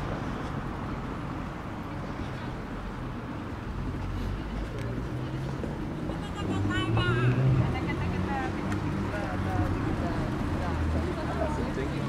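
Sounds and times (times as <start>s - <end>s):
low hum of traffic: 0.0s - 12.0s
people chattering: 0.0s - 12.0s.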